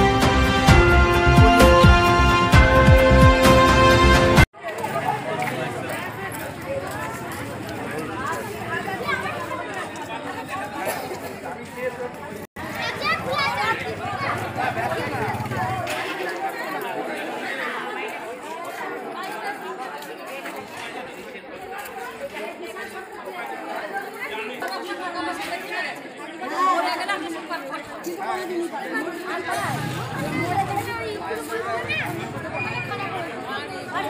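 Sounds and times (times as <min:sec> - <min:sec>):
chatter of many people: 0:04.5 - 0:34.0.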